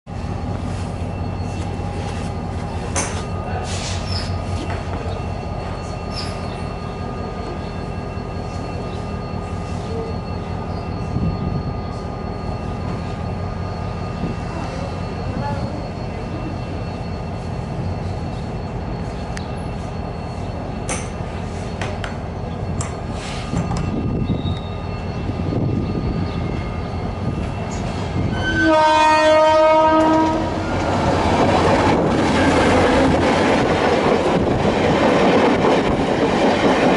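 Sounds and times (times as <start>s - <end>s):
diesel train drone: 0.1s - 36.9s
oncoming locomotive rumble: 0.1s - 36.9s
train wheel noise: 0.1s - 36.9s.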